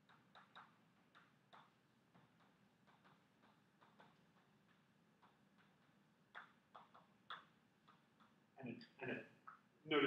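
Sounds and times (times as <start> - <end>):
chalk tapping and scratching: 0.0 - 8.5.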